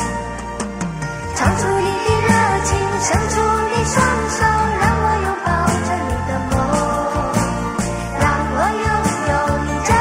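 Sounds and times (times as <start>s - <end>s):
pop band backing: 0.0s - 10.0s
children's chorus singing: 1.4s - 7.5s, 8.2s - 10.0s
girl singing: 1.4s - 7.6s, 8.2s - 10.0s.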